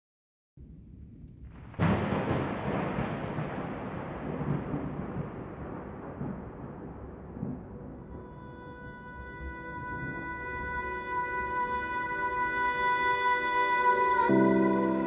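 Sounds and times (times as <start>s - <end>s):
loud noisy boom: 1.4s - 8.1s.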